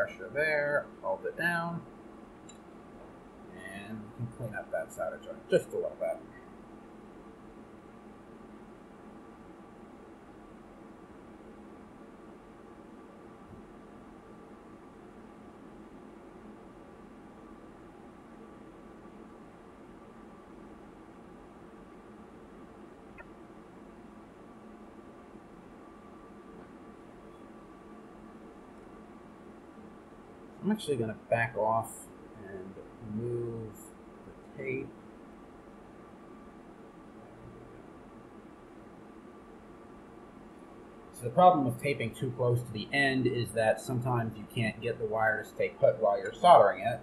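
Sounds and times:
faint steady hum of held tones: 0.0 - 47.0.

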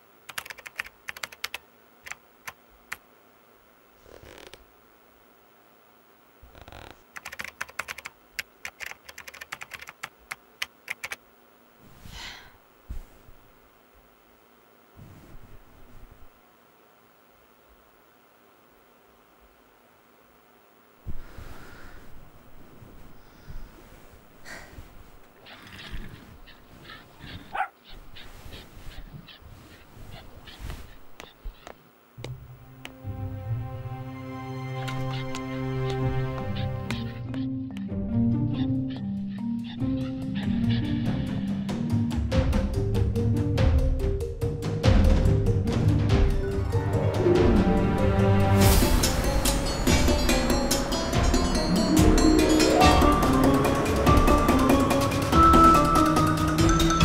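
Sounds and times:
laptop keyboard typing: 0.2 - 3.0, 7.1 - 11.2
dog whining: 25.4 - 31.8.

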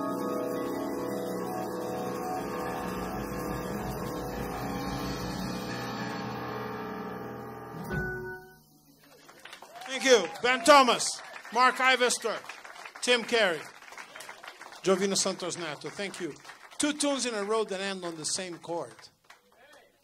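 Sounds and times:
piano and vibraphone chord: 0.0 - 8.8
applause: 9.0 - 20.0.

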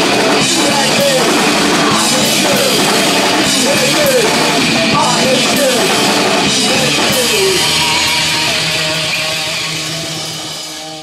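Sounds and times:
distorted electric guitar: 0.0 - 11.0
punk rock band playing: 0.0 - 11.0.

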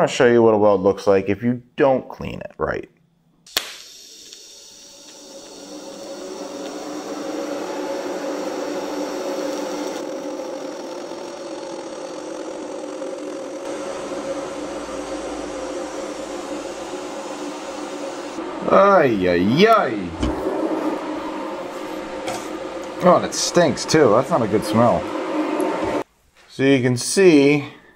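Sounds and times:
welding arc hiss with buzzing hum: 3.5 - 18.4.

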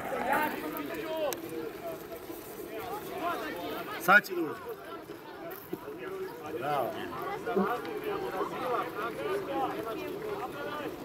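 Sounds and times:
distant voices shouting: 0.0 - 11.0.

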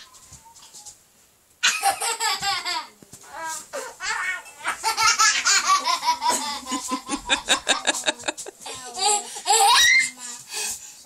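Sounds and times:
young child laughing loudly: 1.6 - 3.0.

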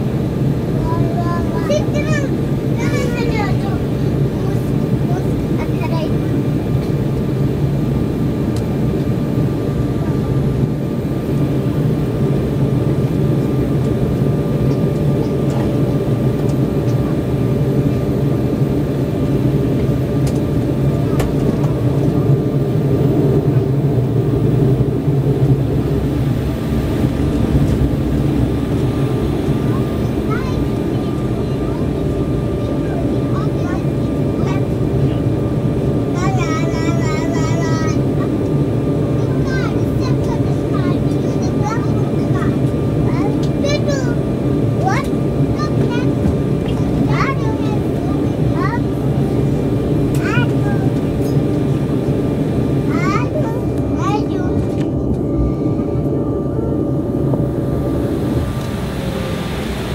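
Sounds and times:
jet engines humming at taxi power: 0.0 - 59.9.

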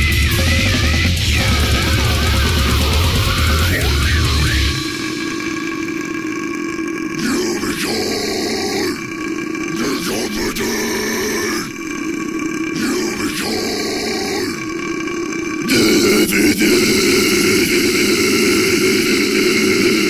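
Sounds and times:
deep guttural grunting vocals: 0.0 - 20.0
steady drone: 0.0 - 20.0.

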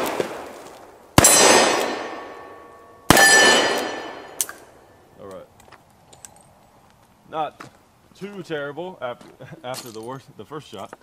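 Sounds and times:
revolver gunshots with echo: 1.2 - 4.7
steel target ringing: 1.2 - 4.7.

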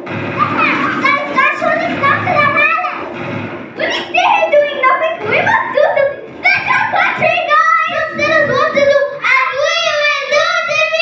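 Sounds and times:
children speaking into microphones: 0.0 - 11.0.

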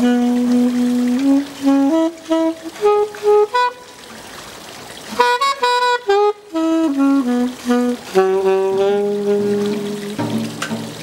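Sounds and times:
saxophone playing short notes: 0.0 - 4.0, 5.1 - 10.2.

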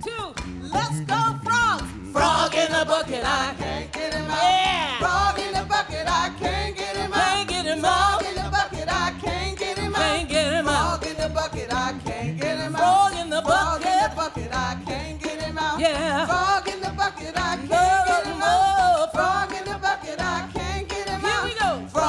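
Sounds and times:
hand drums: 0.0 - 22.0
voices singing call and response: 0.1 - 22.0.

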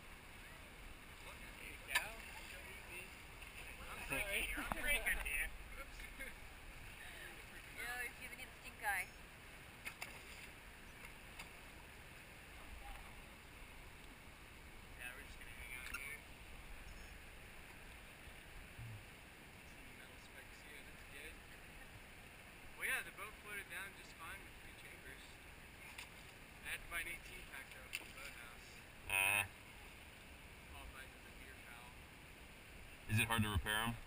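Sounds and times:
calm river water: 0.0 - 34.0.

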